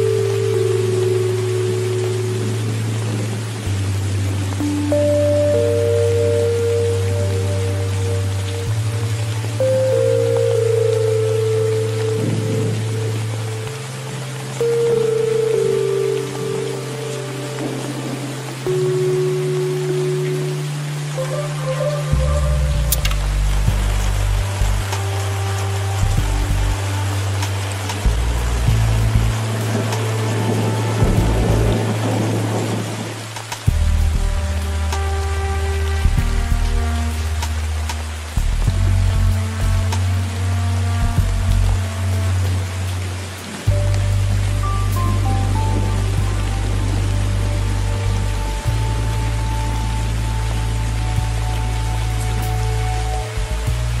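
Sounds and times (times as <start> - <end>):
rainfall hiss: 0.0 - 54.0
slow ambient music: 0.0 - 54.0.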